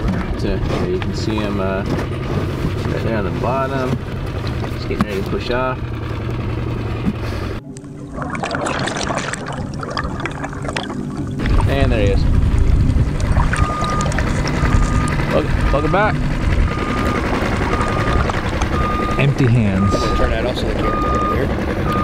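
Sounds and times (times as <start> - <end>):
dense low rush: 2.7 - 22.0
water sloshing: 7.1 - 19.2
wind buffeting a camera: 11.3 - 15.7, 16.3 - 18.8.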